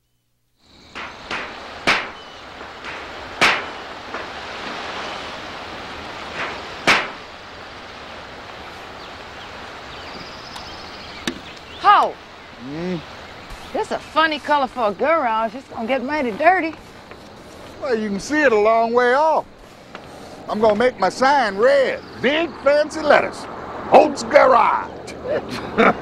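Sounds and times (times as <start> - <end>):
steady outdoor hiss: 0.0 - 26.0
sharp hammer knocks: 0.9 - 4.8, 6.4 - 7.2.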